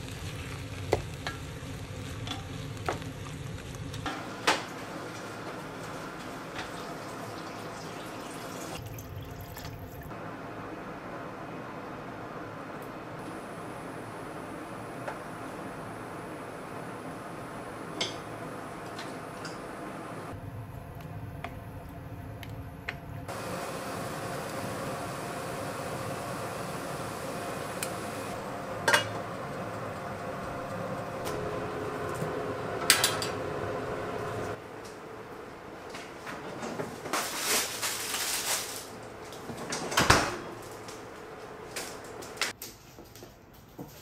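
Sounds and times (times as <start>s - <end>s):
steady background hum: 0.0s - 44.0s.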